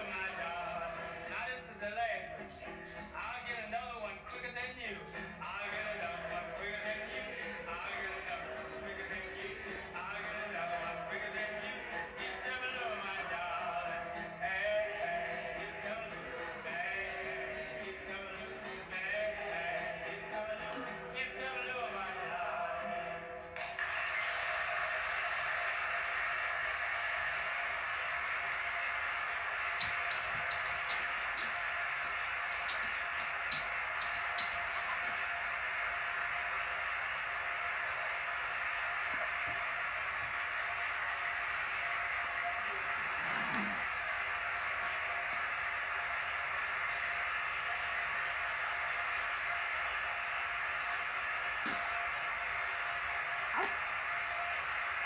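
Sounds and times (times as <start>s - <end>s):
old recording hiss: 0.0s - 55.0s
record crackles: 23.6s - 55.0s.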